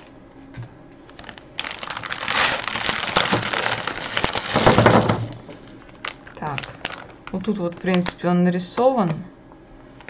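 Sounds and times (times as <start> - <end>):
plastic bag and wrappers rustling: 1.0 - 8.2
candies clattering on wooden table: 1.6 - 8.2.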